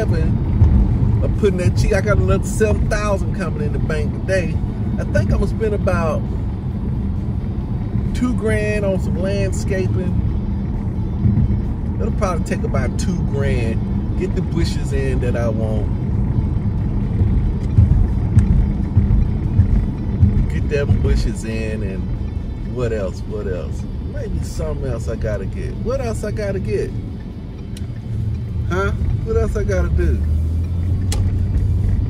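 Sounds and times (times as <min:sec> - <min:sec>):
car cabin road rumble: 0:00.0 - 0:32.0
soft low thumps: 0:00.3 - 0:01.3, 0:10.2 - 0:12.0, 0:15.9 - 0:21.4
sharp click: 0:31.0 - 0:31.4.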